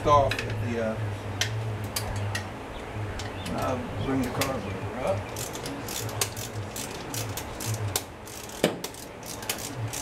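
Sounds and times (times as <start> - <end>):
ratchet wrench clicking: 5.4 - 10.0.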